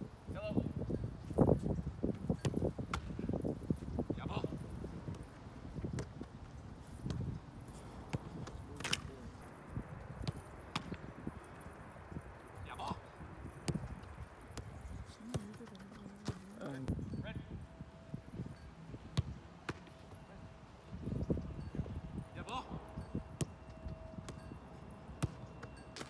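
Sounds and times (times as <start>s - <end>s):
soccer ball thumps: 2.3s - 3.5s, 5.0s - 7.4s, 10.2s - 11.1s.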